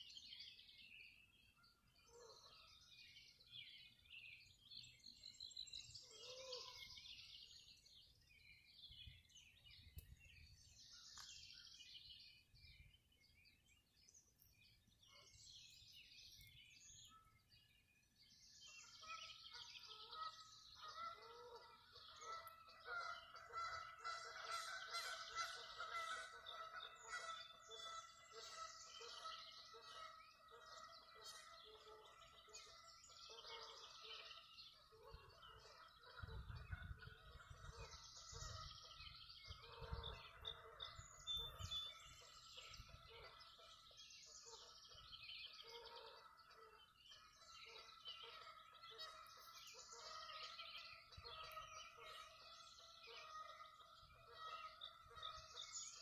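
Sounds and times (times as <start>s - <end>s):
birds calling and chirping: 0.0s - 56.0s.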